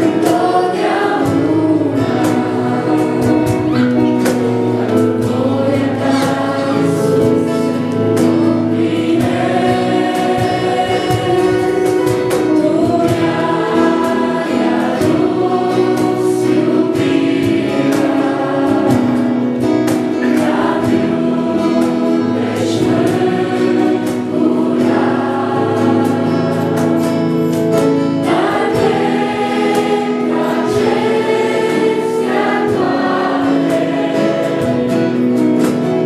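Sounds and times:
girls singing duet: 0:00.0 - 0:35.6.

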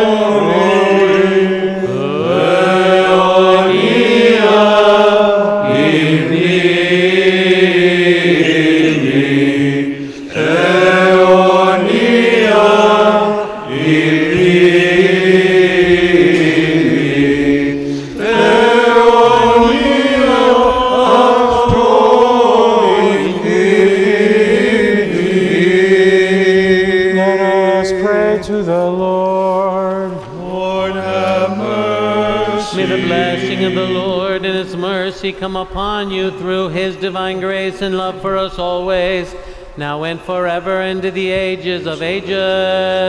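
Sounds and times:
voices chanting slow melody: 0:00.0 - 0:39.6.

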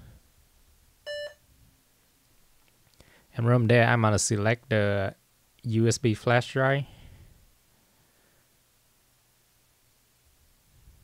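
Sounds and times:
short electronic beep: 0:01.1 - 0:01.4.

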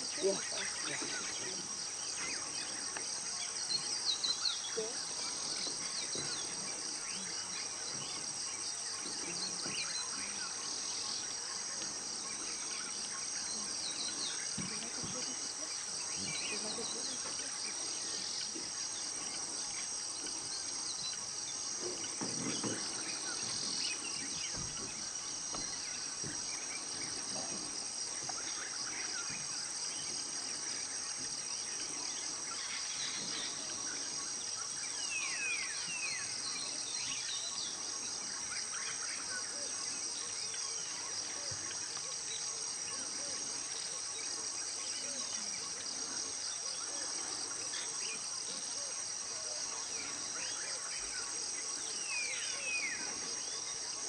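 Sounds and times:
high insect chorus: 0:00.0 - 0:54.0.

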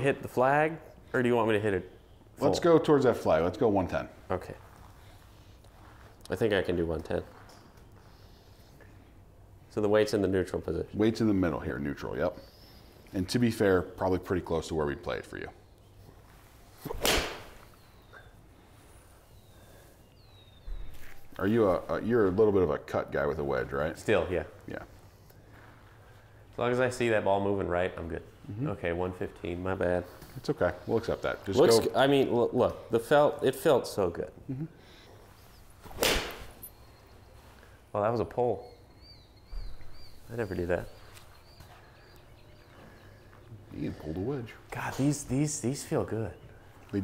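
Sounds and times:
golf club striking ball: 0:16.9 - 0:17.6, 0:35.9 - 0:36.6.

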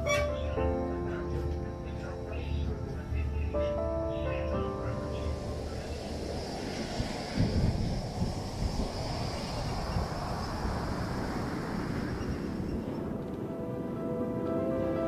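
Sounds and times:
music: 0:00.0 - 0:06.4, 0:13.0 - 0:15.0.

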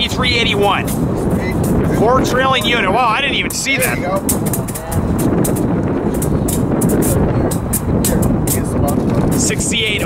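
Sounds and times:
diesel locomotive engine rumble: 0:00.0 - 0:10.0
train clicks and rattles: 0:03.4 - 0:10.0.

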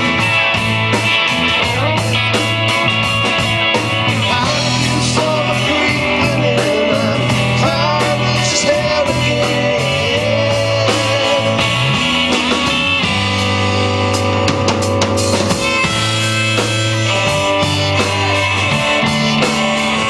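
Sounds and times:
bending lead guitar line: 0:00.0 - 0:20.0
rock band playing: 0:00.0 - 0:20.0.

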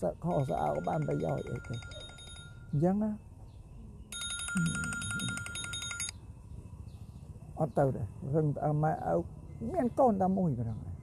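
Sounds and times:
electronic telephone ring: 0:00.3 - 0:02.8, 0:04.1 - 0:06.2.

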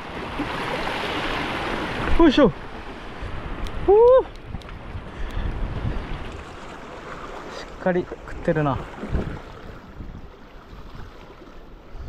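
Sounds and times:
wind buffeting microphone: 0:00.0 - 0:07.4, 0:08.1 - 0:12.0
sea water washing against concrete: 0:00.0 - 0:10.1
person exclaiming: 0:03.8 - 0:04.3.

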